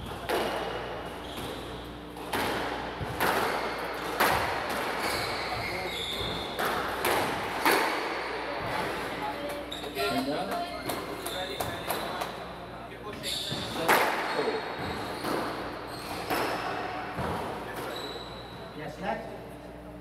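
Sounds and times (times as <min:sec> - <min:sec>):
squash ball striking rackets and walls: 0:00.0 - 0:12.5, 0:13.4 - 0:18.7.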